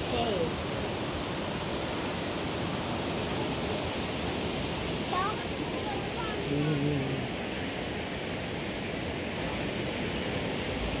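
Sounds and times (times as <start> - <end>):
water flowing over rock: 0.0 - 11.0.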